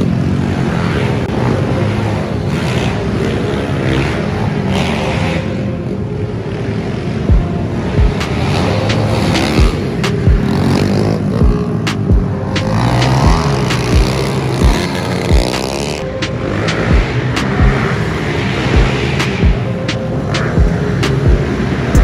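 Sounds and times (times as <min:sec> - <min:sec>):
dirt bike engines revving: 0:00.0 - 0:22.0.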